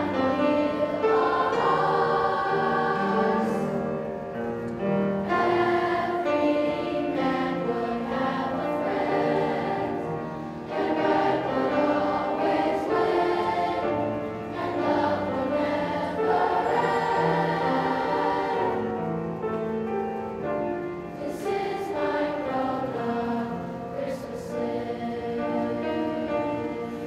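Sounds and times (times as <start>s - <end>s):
children's choir singing: 0.0s - 27.0s.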